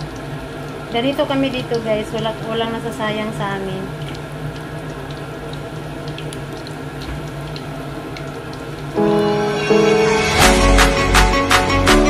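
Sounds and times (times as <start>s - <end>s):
oil popping and crackling: 0.0s - 9.0s
hot oil sizzling: 0.0s - 10.5s.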